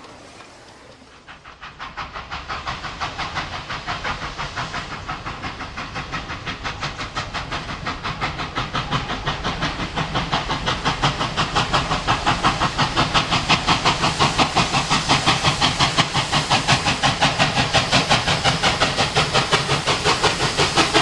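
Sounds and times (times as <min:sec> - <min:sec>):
steam locomotive chuffing: 0:00.0 - 0:21.0.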